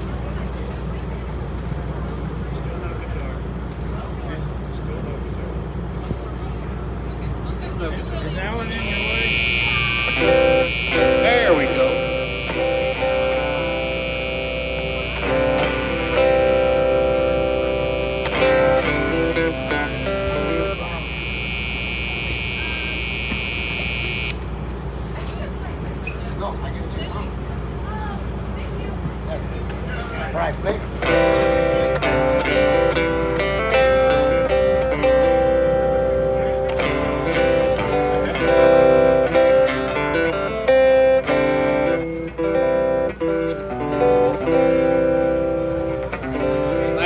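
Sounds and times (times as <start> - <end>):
steady high-pitched tone: 8.3 - 24.4
electric guitar chords: 8.4 - 24.6, 30.4 - 47.0.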